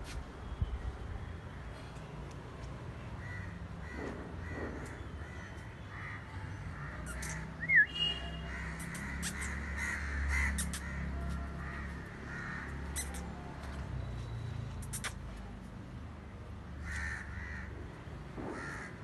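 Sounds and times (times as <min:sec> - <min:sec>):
birds calling harshly: 0:03.2 - 0:13.4.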